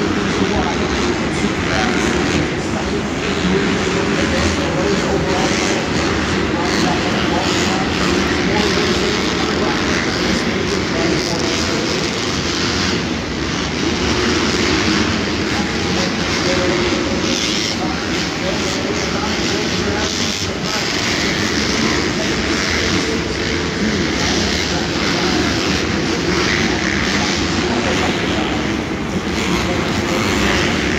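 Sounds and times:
dirt bike engines revving: 0.0 - 30.9.

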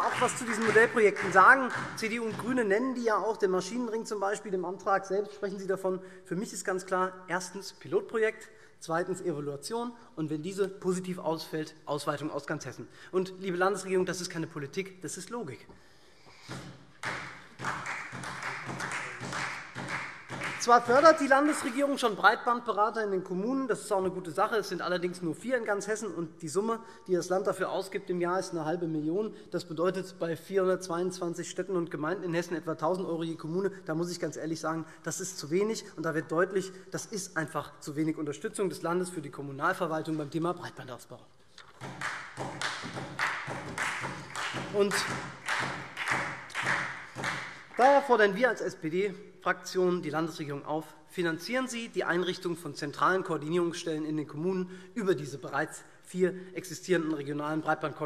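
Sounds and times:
muffled scattered applause: 0.0 - 2.1, 17.0 - 21.7, 41.8 - 48.1
person speaking: 0.0 - 15.7, 20.4 - 43.0, 44.5 - 45.9, 46.5 - 58.0.

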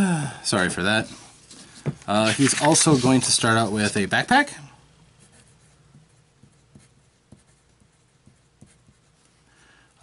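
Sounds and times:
pencil scratching on paper: 5.2 - 9.3.

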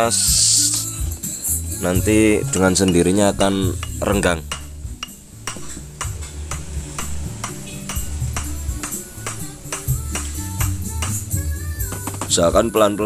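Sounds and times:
background music with steady beat: 0.0 - 13.0.

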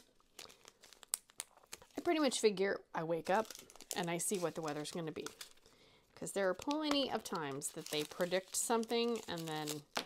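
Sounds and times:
plastic bags crinkling: 0.0 - 2.4, 3.2 - 10.0.

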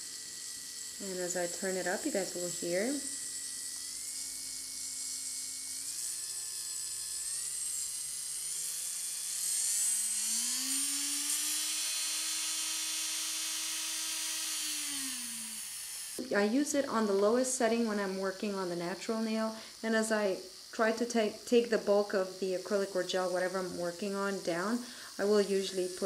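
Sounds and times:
electric nail drill whining: 0.0 - 26.0.

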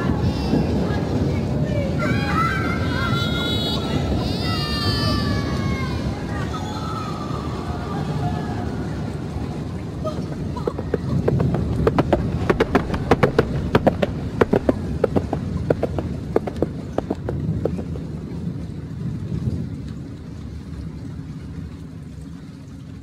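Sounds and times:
steady low rumble: 5.3 - 23.0
sharp irregular knocks: 10.8 - 17.9.

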